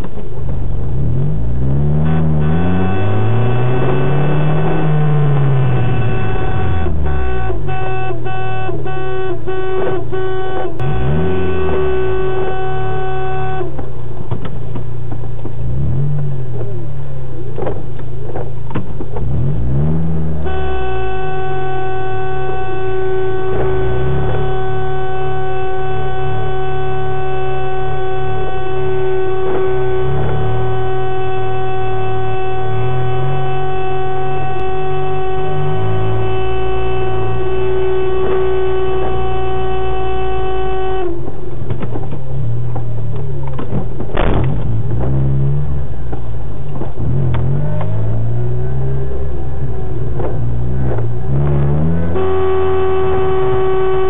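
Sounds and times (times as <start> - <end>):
car horn blast: 0.0 - 16.9, 18.9 - 54.0
car engine revving: 0.0 - 54.0.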